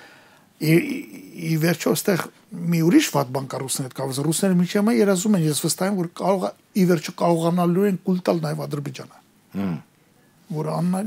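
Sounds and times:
man talking: 0.6s - 9.8s, 10.5s - 11.0s.

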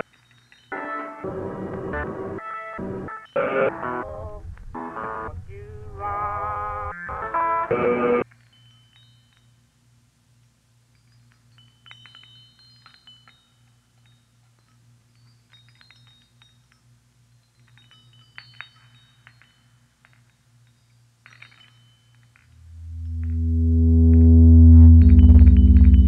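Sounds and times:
low electronic drone: 22.6s - 26.0s
short high chime-like tones: 22.6s - 26.0s.

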